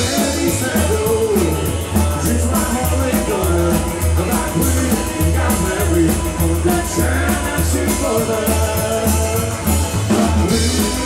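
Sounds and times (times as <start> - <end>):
drum beat with cymbals: 0.0 - 11.0
electric guitar: 0.0 - 11.0
person singing: 0.0 - 11.0
walking double bass: 0.0 - 11.0.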